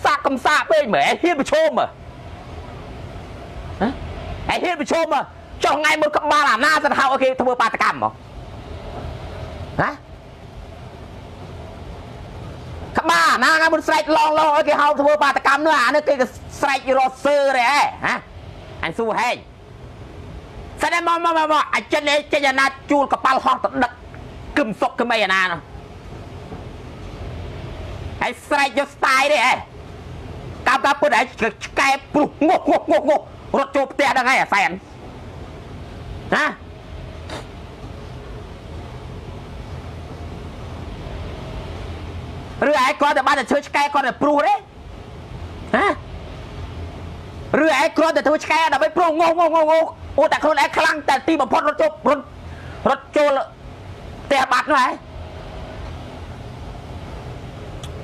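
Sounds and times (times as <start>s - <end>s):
low steady background hum: 0.0s - 58.0s.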